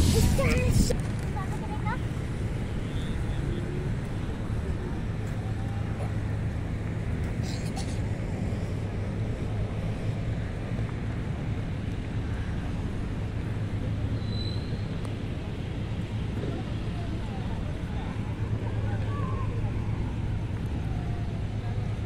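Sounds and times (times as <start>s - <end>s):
low outdoor rumble: 0.0s - 22.0s
faint distant voices: 12.0s - 22.0s.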